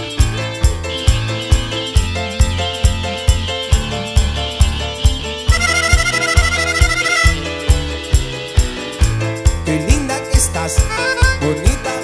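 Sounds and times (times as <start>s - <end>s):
bass and drum beat: 0.0s - 12.0s
high lead melody: 0.0s - 12.0s.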